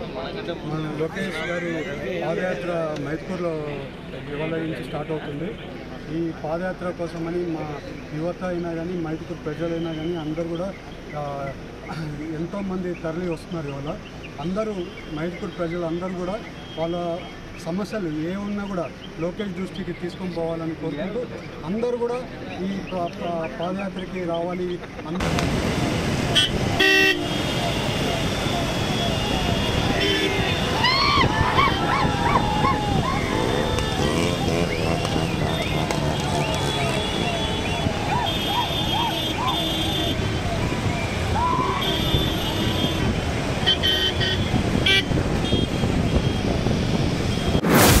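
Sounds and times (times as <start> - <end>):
people's voices: 0.0 - 25.4, 26.1 - 41.8
motorcycles and car moving: 0.0 - 48.0
vehicle horn toot: 26.4 - 30.8, 33.4 - 40.3, 41.8 - 47.7
loud whoosh: 47.5 - 48.0.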